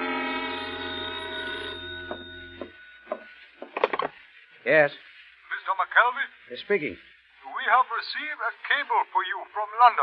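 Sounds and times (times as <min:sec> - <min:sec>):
held brass chord: 0:00.0 - 0:02.4
telephone bell ringing: 0:00.0 - 0:03.4.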